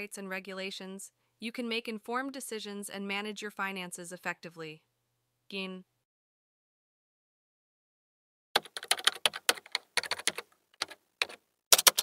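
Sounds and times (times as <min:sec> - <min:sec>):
keyboard typing clicks: 0:08.6 - 0:12.0.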